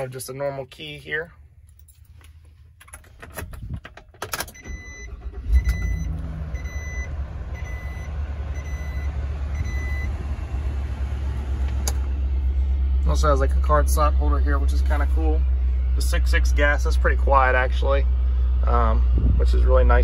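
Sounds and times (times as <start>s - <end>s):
truck engine cranking and idling: 1.6s - 20.0s
dashboard warning chime beeping: 4.5s - 10.2s.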